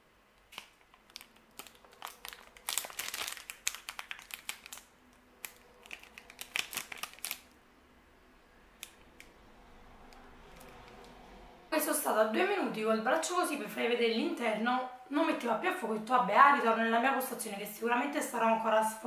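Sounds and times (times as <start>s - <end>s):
plastic wrapper crinkling: 0.5s - 7.6s.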